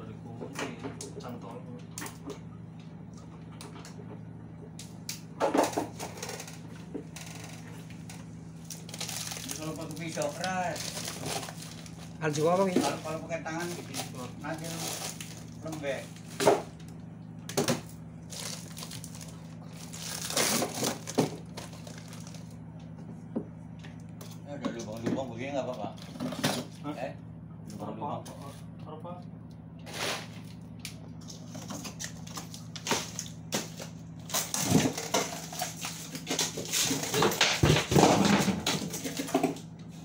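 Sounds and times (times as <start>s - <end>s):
low machinery hum: 0.0s - 40.0s
plastic bags rustling and crinkling: 8.6s - 16.4s, 18.2s - 22.5s.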